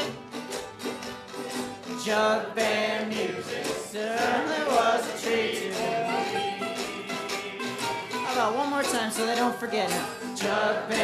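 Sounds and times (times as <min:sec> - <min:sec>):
jug band playing blues: 0:00.0 - 0:11.0.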